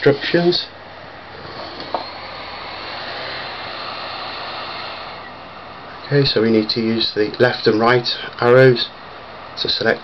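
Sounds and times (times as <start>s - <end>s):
laptop cooling fan: 0.0s - 10.0s.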